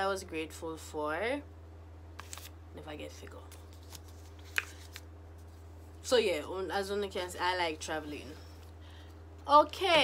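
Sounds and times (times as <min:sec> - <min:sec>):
low steady hum: 0:00.0 - 0:10.0
paper crinkling: 0:02.2 - 0:02.5, 0:03.5 - 0:05.5.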